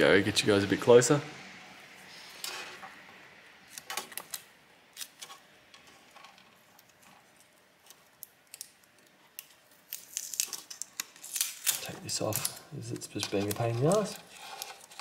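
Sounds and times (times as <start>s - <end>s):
faint clicks and crinkles: 3.7s - 15.0s.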